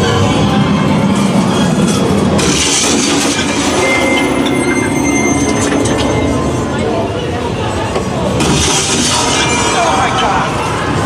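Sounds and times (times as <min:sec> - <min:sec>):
low rumbling soundtrack: 0:00.0 - 0:08.4.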